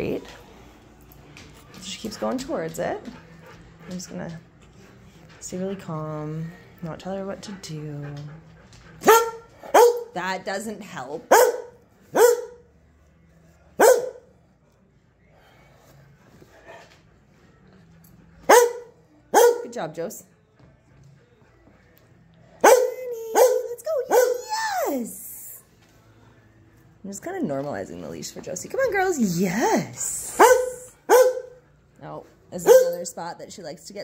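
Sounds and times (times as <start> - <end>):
dog barking: 9.0 - 10.1, 11.3 - 12.6, 13.8 - 14.3, 18.5 - 19.7, 22.6 - 24.4, 30.4 - 31.6, 32.6 - 33.0.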